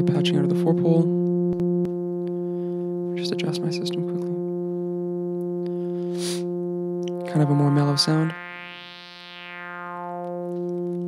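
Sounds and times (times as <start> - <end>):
synthesizer drone: 0.0 - 11.0.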